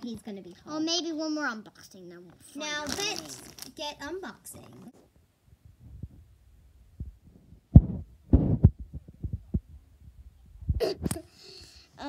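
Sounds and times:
toy figures thumping on carpet: 7.0s - 9.7s.

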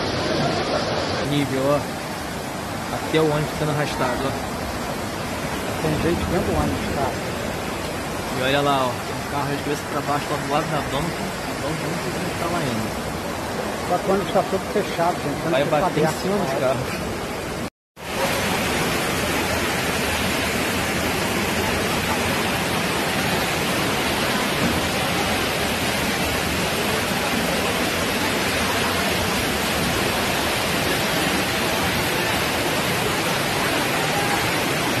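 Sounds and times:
torrential rain and floodwater rushing: 0.0s - 35.0s.

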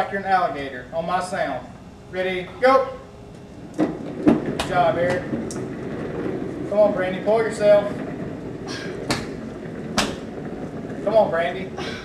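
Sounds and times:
small casters rolling on hard floor: 3.3s - 12.0s.

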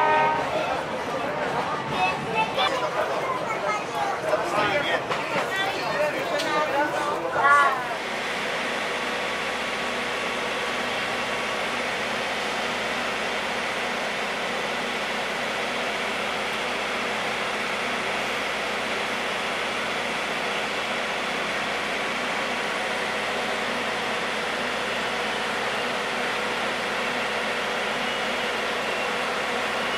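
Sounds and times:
diesel locomotive engine running: 0.0s - 29.9s.

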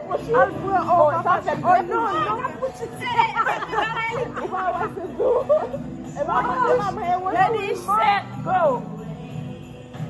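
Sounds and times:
lively group chatter: 0.0s - 10.0s.

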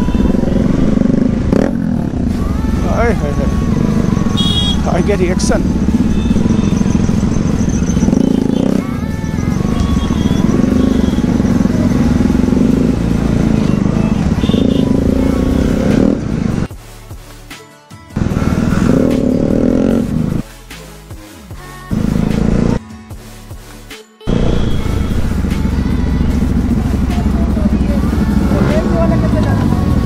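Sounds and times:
motorcycle engine revving: 0.0s - 16.7s, 18.2s - 20.4s, 21.9s - 22.8s, 24.3s - 30.0s.

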